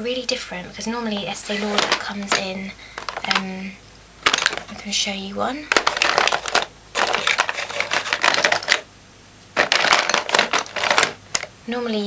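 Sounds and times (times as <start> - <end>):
small hard items clattering: 1.2 - 3.6, 4.2 - 5.0, 5.7 - 8.9, 9.6 - 11.5.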